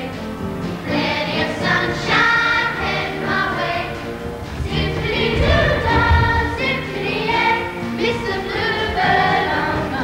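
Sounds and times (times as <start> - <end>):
instrumental accompaniment: 0.0 - 10.0
choir singing: 0.8 - 10.0.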